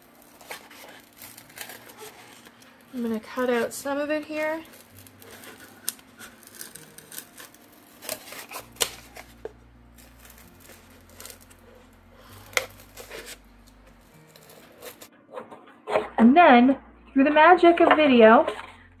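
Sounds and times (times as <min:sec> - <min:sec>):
paper rustling: 0:00.0 - 0:03.7, 0:04.5 - 0:15.1
scissors snipping: 0:04.8 - 0:09.2.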